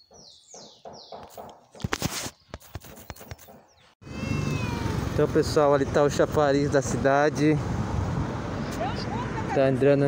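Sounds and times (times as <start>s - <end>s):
bird calling with falling notes: 2.3s - 5.0s.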